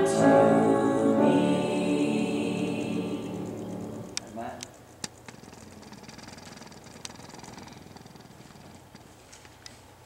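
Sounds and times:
faint clicks: 4.1s - 9.8s.

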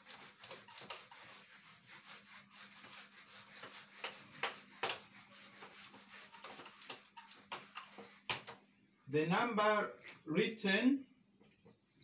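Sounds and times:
eraser rubbing on whiteboard: 0.0s - 8.6s.

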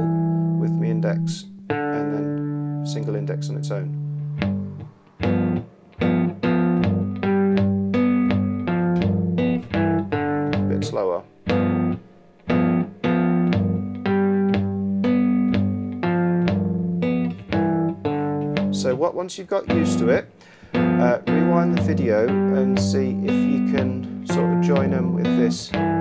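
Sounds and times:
fingerstyle blues guitar: 0.0s - 26.0s.

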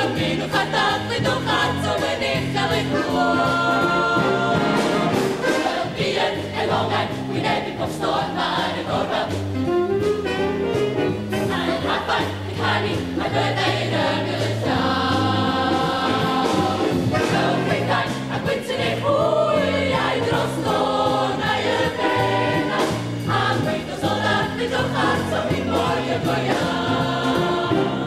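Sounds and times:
youth choir singing: 0.0s - 9.6s, 11.3s - 28.0s
instrumental accompaniment: 0.0s - 28.0s.

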